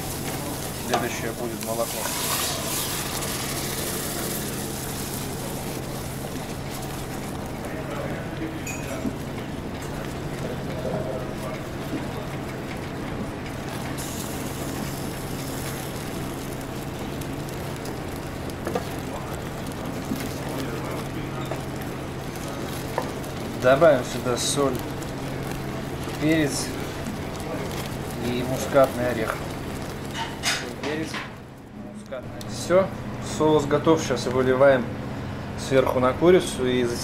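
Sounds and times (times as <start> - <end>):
wooden spoon stirring sauce: 0.0 - 30.5
milk sizzling in hot pot: 0.0 - 31.7
low machinery hum: 0.0 - 37.0.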